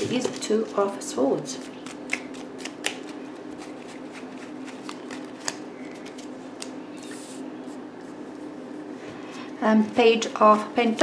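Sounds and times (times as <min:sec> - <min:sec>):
cards being shuffled: 0:01.6 - 0:07.4.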